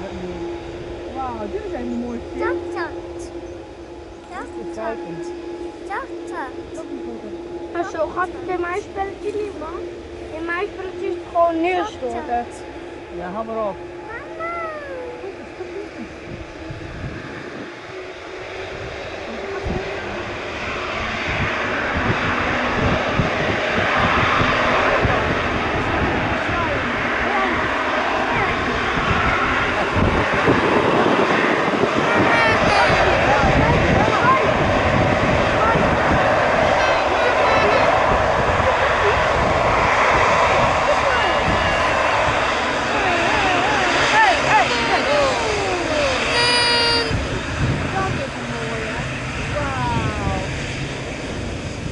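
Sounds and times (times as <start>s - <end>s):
jet engines running: 0.0s - 51.9s.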